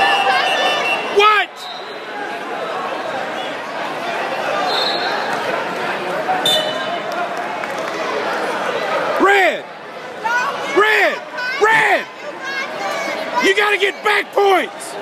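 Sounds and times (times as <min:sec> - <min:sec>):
spectators shouting and chattering: 0:00.0 - 0:15.0.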